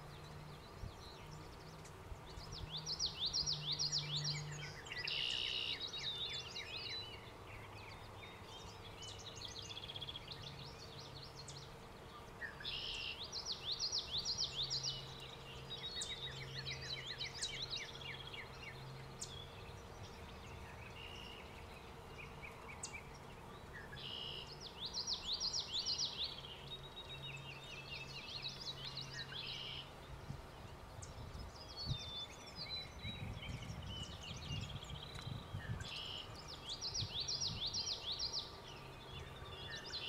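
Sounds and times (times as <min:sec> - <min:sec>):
songbirds singing: 0:00.0 - 0:40.0.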